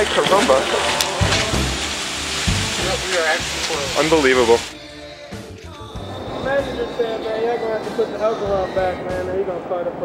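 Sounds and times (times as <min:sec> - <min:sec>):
people talking: 0:00.0 - 0:01.7, 0:02.8 - 0:04.7, 0:06.4 - 0:10.0.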